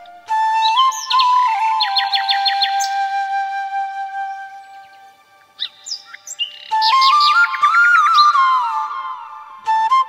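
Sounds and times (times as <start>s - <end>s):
birds chirping and trilling: 0.0s - 9.4s
bamboo flute: 0.0s - 10.0s.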